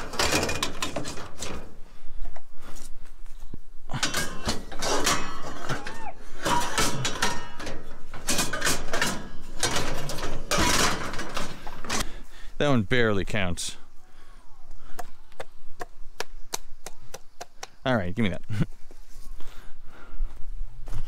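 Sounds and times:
scrap metal clanking and scraping: 0.0s - 2.2s, 3.9s - 12.2s
metal rubbing squeak: 3.9s - 12.0s.

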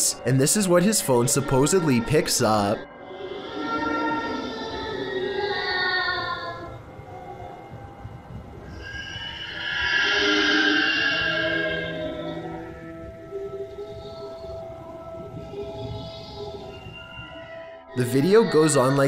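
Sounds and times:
eerie wailing tones: 0.0s - 19.0s.

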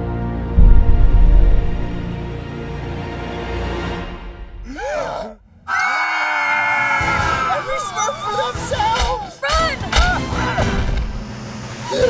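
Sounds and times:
man screaming: 4.7s - 8.5s.

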